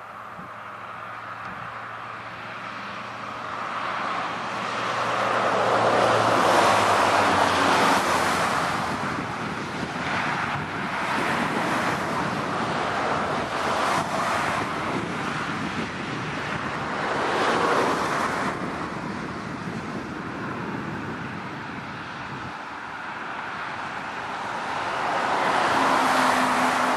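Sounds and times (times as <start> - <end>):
rushing outdoor noise: 0.0 - 26.9.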